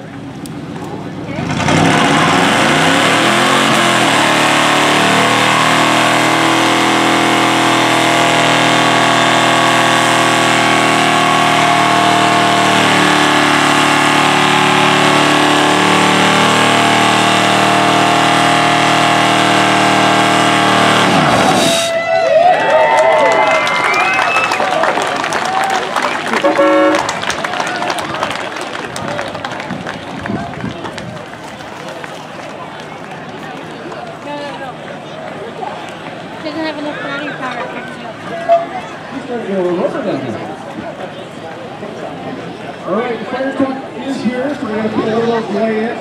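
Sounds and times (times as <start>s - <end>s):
car engine revving: 1.3s - 21.9s, 26.3s - 27.2s.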